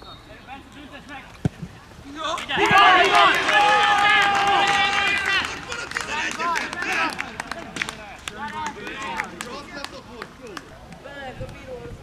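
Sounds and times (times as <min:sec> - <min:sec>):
men shouting together: 0:02.5 - 0:07.2.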